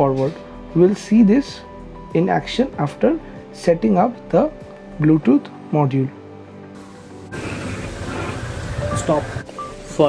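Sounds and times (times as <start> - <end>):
wheels rolling on smooth surface: 7.3 - 9.5.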